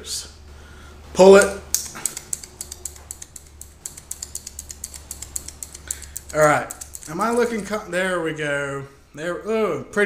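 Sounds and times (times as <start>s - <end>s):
scissors snipping cord: 1.4s - 7.8s.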